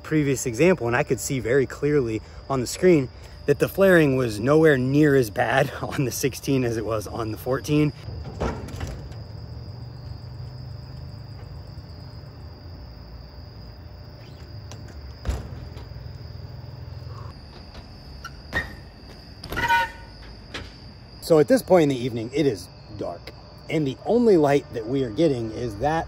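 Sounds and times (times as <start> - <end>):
bike landing knock: 8.1 - 9.3, 14.3 - 16.3.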